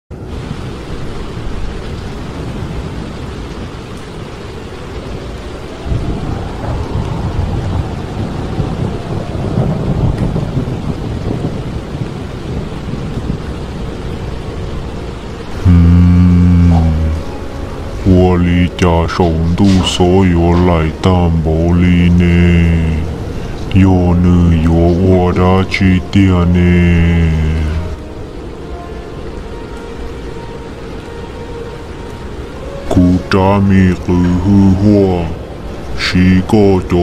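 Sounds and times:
rain: 0:00.1 - 0:37.0
rolling thunder: 0:04.8 - 0:15.6
loud low held tone: 0:15.6 - 0:28.0.

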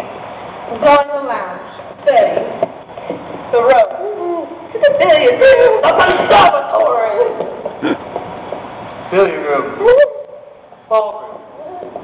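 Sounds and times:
short laugh-like vocal sound: 0:07.8 - 0:08.1.

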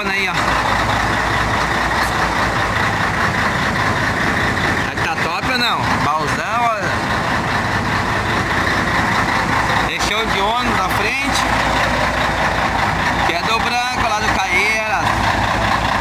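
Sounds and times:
voices talking: 0:00.0 - 0:15.8
diesel truck engine idling: 0:00.0 - 0:16.0.

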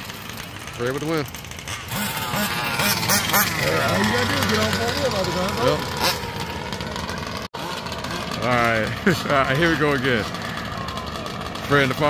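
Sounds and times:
small two-stroke engine revving: 0:00.0 - 0:12.0
voices: 0:00.3 - 0:12.0.

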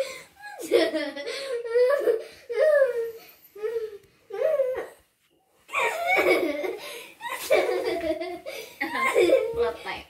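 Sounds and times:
woman and girl laughing: 0:00.6 - 0:02.2, 0:05.8 - 0:09.6.

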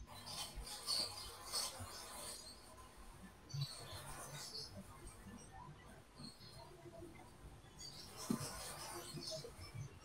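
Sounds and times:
broken video call chirps and crackles: 0:00.0 - 0:10.0.

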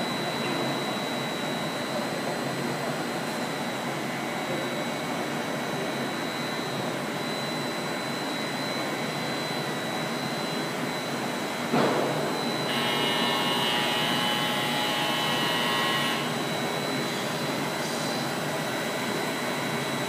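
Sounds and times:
extrusion machine running with whine: 0:00.0 - 0:20.0.

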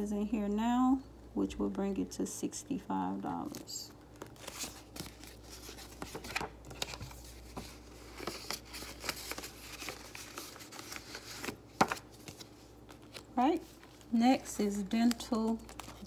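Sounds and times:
paper and plastic rustling: 0:03.3 - 0:16.0.

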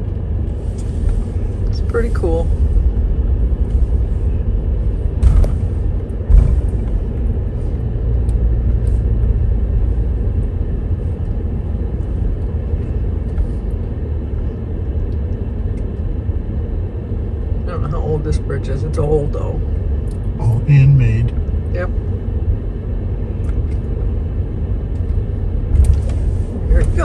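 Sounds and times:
vehicle rumbling on wooden bridge: 0:02.5 - 0:11.5.

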